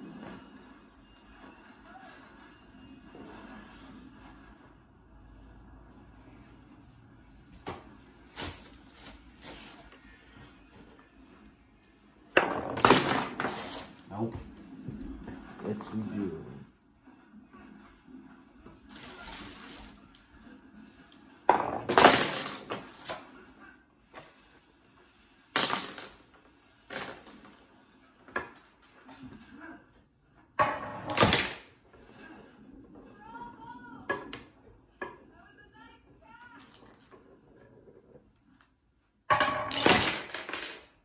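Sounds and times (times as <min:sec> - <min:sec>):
toy bowling pins clattering: 0:12.4 - 0:14.0, 0:21.5 - 0:23.3, 0:25.6 - 0:27.7, 0:30.6 - 0:31.8, 0:39.3 - 0:41.0.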